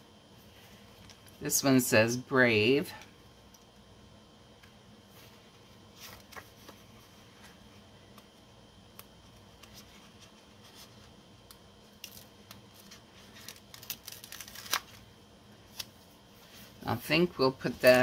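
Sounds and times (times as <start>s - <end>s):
fingernails peeling paper sticker: 12.0s - 15.0s.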